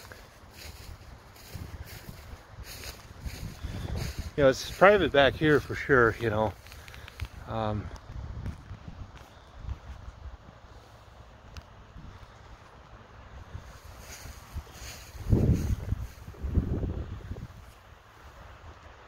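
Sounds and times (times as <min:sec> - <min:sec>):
wind buffeting microphone: 0:00.0 - 0:10.7, 0:13.3 - 0:17.7.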